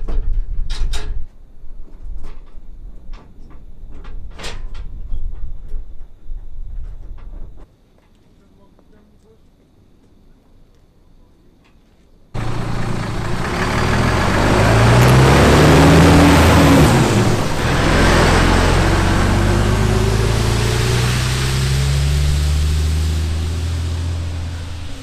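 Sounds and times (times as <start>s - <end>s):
diesel lorry accelerating: 12.4s - 25.0s.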